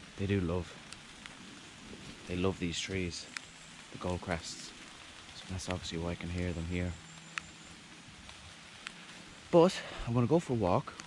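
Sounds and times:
rain falling through woodland: 0:00.0 - 0:11.0.

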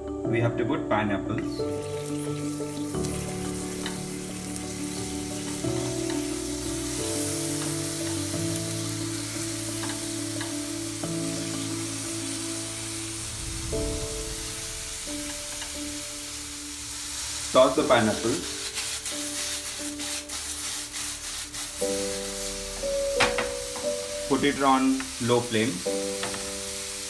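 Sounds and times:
background music of held notes: 0:00.0 - 0:27.0
fruit sizzling in frying pan: 0:01.6 - 0:27.0.

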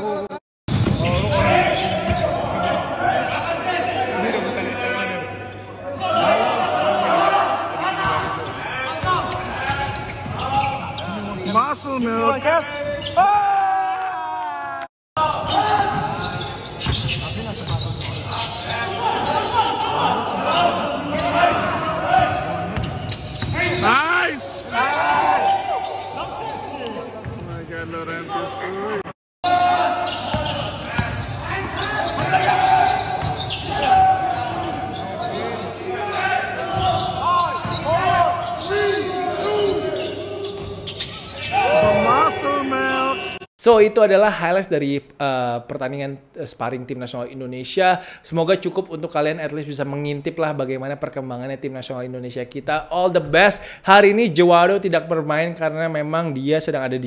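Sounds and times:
voices in large hall: 0:00.0 - 0:57.0
sneakers squeaking: 0:00.1 - 0:06.5, 0:08.0 - 0:11.8, 0:12.6 - 0:13.3, 0:15.3 - 0:43.5
players calling out: 0:28.1 - 0:43.5.

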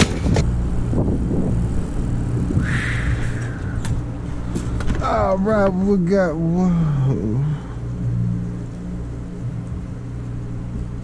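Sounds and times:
low engine rumble: 0:00.0 - 0:11.0.

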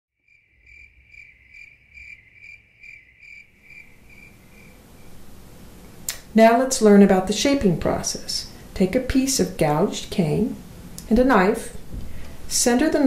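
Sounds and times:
high cricket-like chirps: 0:00.2 - 0:05.2
faint room hiss: 0:00.3 - 0:13.0.

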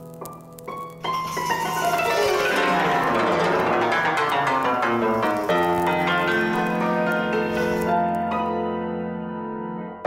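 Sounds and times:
piano background music: 0:00.0 - 0:10.0.

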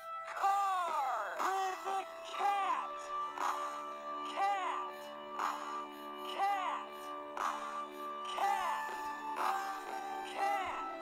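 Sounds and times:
slowed children's song music: 0:00.0 - 0:11.0
slowed-down singing voice: 0:00.0 - 0:11.0.

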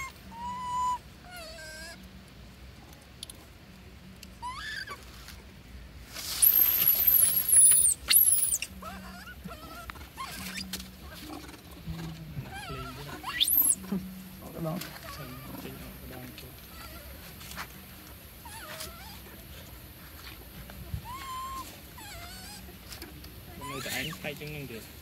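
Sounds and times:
monkeys squealing: 0:00.0 - 0:02.0, 0:04.3 - 0:05.0, 0:06.4 - 0:17.3, 0:18.4 - 0:19.3, 0:21.0 - 0:22.9, 0:23.5 - 0:24.3.

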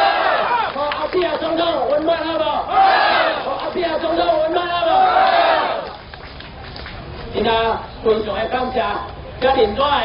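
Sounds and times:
crowd shouting and cheering: 0:00.0 - 0:01.1, 0:02.4 - 0:05.9.

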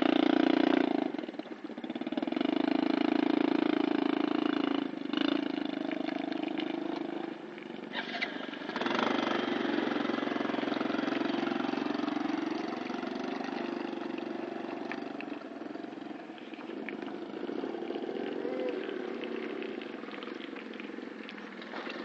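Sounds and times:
motorcycle engine revving: 0:00.0 - 0:22.0.

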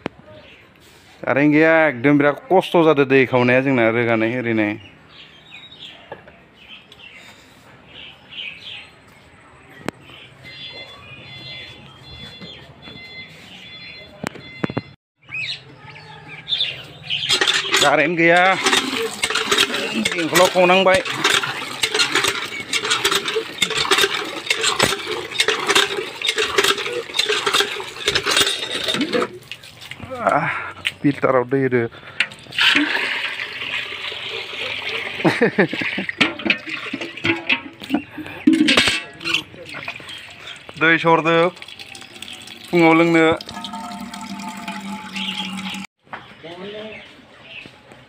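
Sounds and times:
hand pump clanking and creaking: 0:17.2 - 0:29.4, 0:32.1 - 0:33.4, 0:36.0 - 0:45.9
water splashing into metal bucket: 0:17.3 - 0:30.0, 0:32.2 - 0:45.9.

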